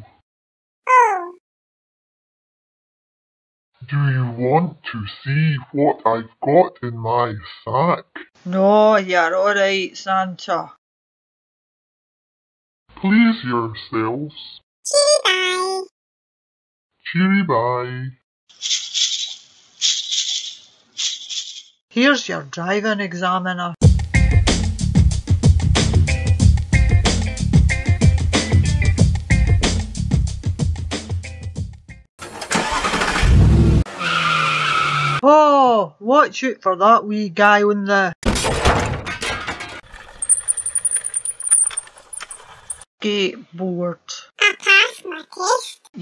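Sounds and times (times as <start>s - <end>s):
shaker rattling: 18.6s - 21.7s, 40.2s - 42.8s
loud crash: 38.2s - 39.8s
breaking glass tinkling: 40.0s - 42.8s
thin high ring: 40.2s - 42.8s.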